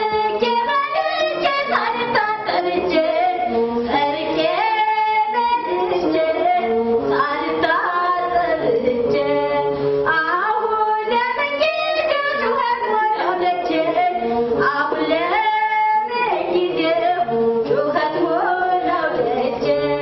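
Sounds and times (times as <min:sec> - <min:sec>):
woman singing unaccompanied: 0:00.0 - 0:20.0.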